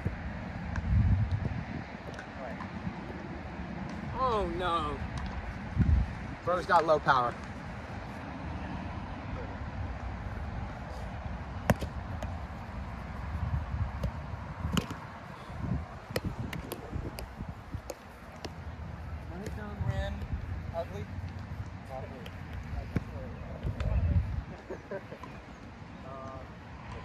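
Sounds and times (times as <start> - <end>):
wind rumbling on microphone: 0.0 - 27.0
ball slapped by hands: 11.6 - 12.4, 14.0 - 15.0, 16.1 - 18.6.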